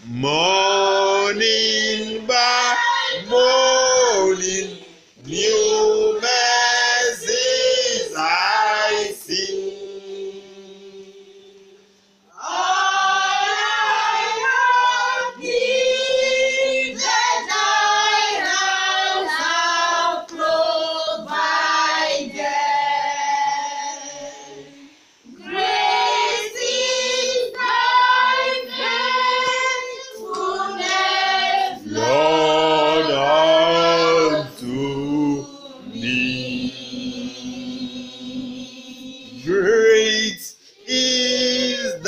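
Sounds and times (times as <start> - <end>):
group singing a hymn unaccompanied: 0.0 - 42.0.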